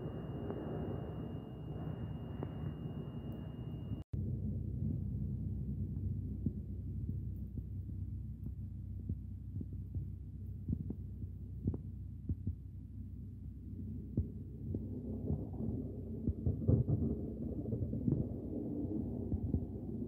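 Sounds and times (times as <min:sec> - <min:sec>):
low outdoor rumble: 0:00.0 - 0:20.0
faint irregular ticks: 0:06.4 - 0:12.8.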